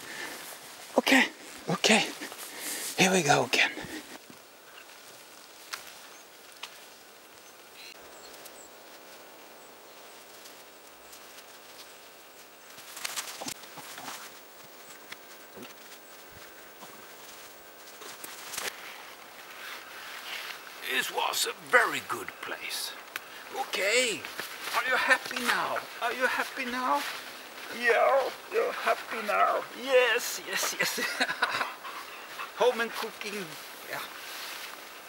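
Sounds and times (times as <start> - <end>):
faint forest background: 0.0 - 35.0
twigs cracking: 3.9 - 20.8, 22.6 - 30.9
footsteps on moss and branches: 3.9 - 21.9, 22.9 - 31.2.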